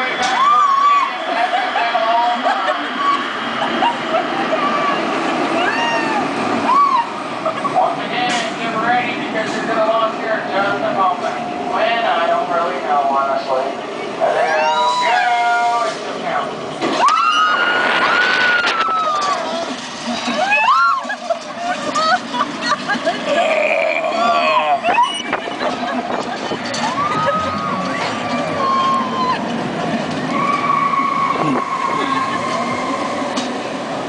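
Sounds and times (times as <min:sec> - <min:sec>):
riders squealing: 0:16.9 - 0:33.4.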